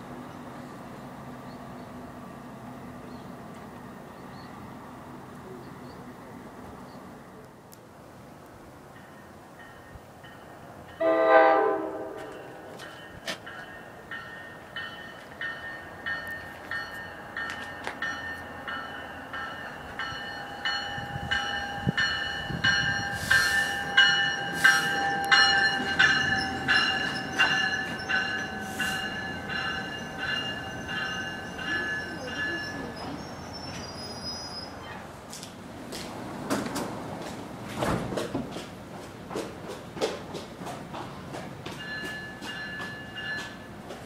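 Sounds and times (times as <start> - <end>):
train passing with rumble: 0.0 - 44.0
railroad warning bell ringing: 8.9 - 34.6, 41.7 - 43.9
train brake hiss: 23.0 - 25.2, 28.0 - 29.2.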